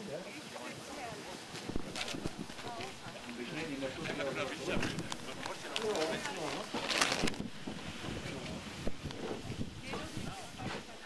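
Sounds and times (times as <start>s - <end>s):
faint voices talking: 0.0s - 11.0s
wind buffeting microphone: 1.6s - 11.0s.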